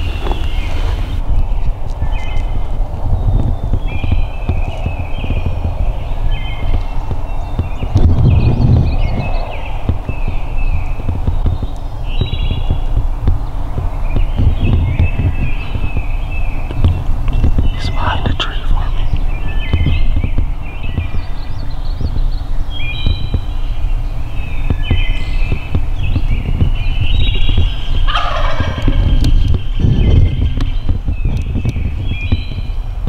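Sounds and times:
songbirds chirping: 0.0 - 33.0
heavy low rumble: 2.5 - 33.0.

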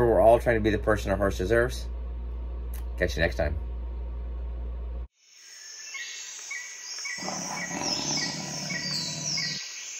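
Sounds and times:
high insect chorus: 5.1 - 9.9
bird chirping: 5.4 - 9.9.

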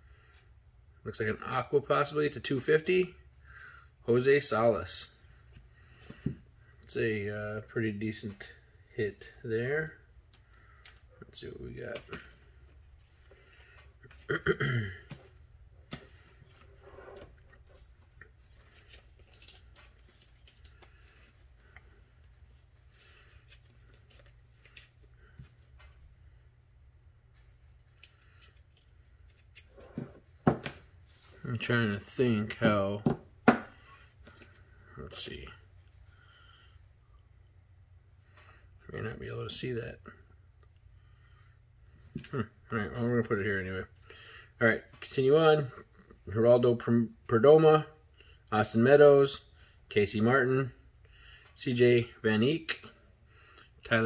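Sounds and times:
low steady hum: 0.0 - 54.0
trading cards rustling: 17.6 - 26.0.

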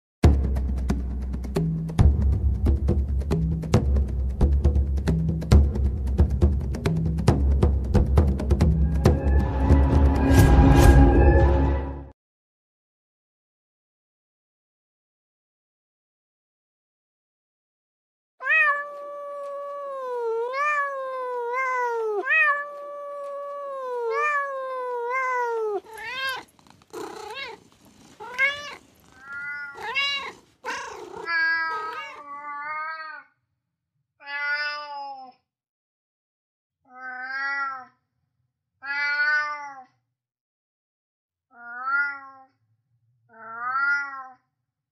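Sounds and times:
cat meowing: 18.4 - 33.3, 34.2 - 35.3, 36.9 - 38.0, 38.8 - 39.9, 41.5 - 42.5, 43.3 - 44.4.

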